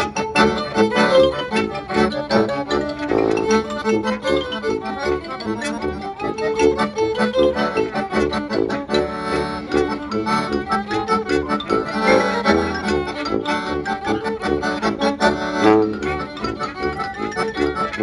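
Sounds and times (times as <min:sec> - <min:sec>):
accordion: 0:00.0 - 0:18.0
klezmer band playing: 0:00.0 - 0:18.0.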